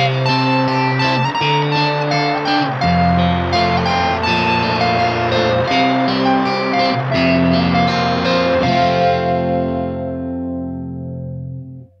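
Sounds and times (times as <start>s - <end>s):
guitar chord ringing: 0.0s - 12.0s.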